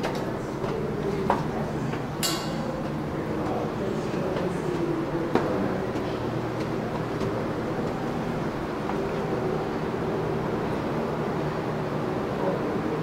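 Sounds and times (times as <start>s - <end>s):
low mechanical hum: 0.0s - 13.0s.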